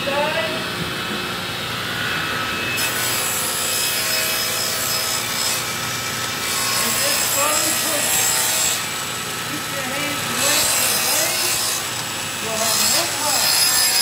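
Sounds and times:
table saw motor hum: 0.0s - 14.0s
saw blade cutting plywood: 1.9s - 14.0s.

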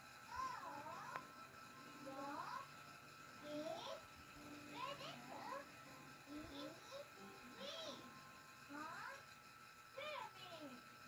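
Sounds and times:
soft music: 0.0s - 11.0s.

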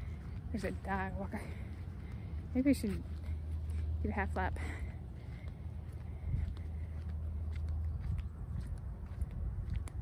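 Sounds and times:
footsteps walking: 0.0s - 10.0s
low wind rumble: 0.0s - 10.0s.

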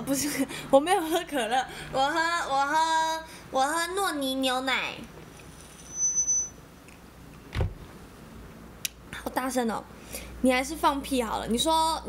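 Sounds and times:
short high-pitched electronic beep: 5.8s - 6.6s.

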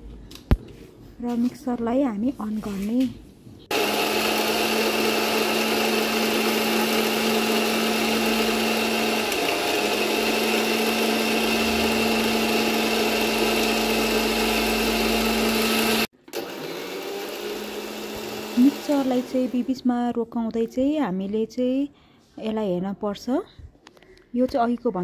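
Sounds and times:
mixer grinder motor whine: 3.7s - 19.7s.

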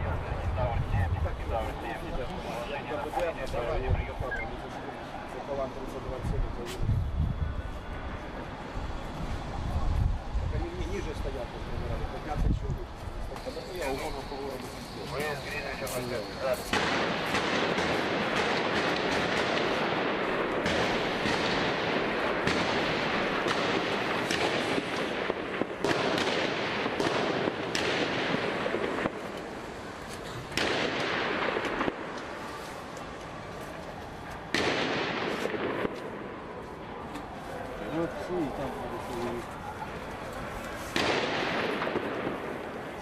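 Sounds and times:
voices: 0.0s - 25.9s, 26.8s - 43.0s
sharp pops and bangs: 13.2s - 33.2s, 34.3s - 37.3s, 40.6s - 43.0s.

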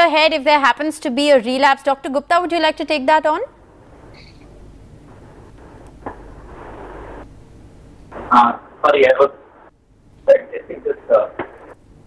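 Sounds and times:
faint hiss from audio line: 0.0s - 12.0s.

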